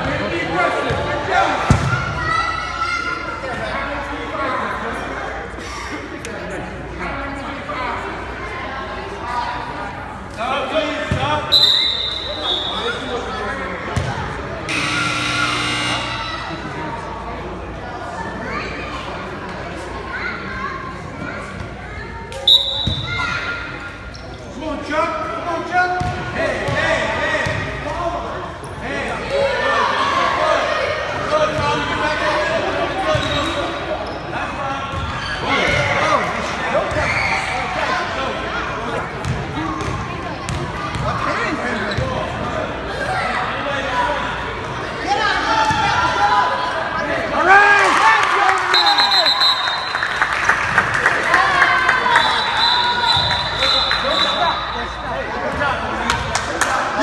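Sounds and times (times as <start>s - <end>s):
spectators chattering and shouting: 0.0s - 57.0s
referee whistle blast: 11.5s - 13.0s, 22.4s - 23.1s, 48.7s - 50.0s, 52.2s - 55.0s.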